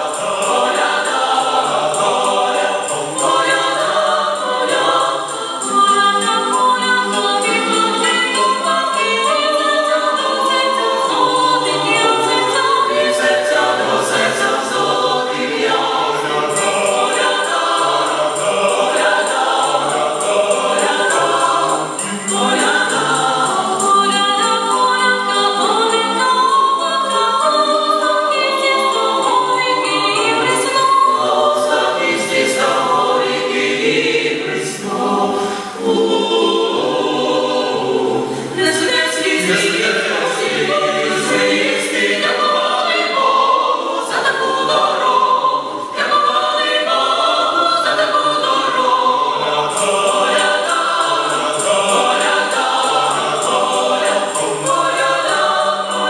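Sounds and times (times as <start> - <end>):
mixed choir singing a cappella: 0.0 - 56.0.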